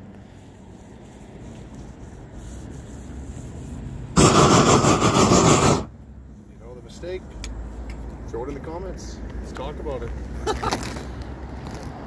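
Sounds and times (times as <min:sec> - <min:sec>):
roofing torch roaring: 0:04.2 - 0:05.9.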